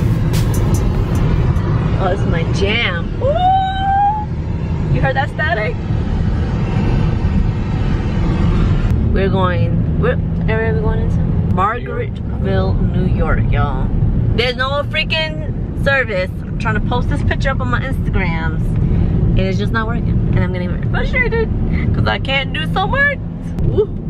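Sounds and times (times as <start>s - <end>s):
car cabin road rumble: 0.0s - 24.0s
woman talking: 2.0s - 3.2s, 4.9s - 5.8s, 9.1s - 18.7s, 19.4s - 24.0s.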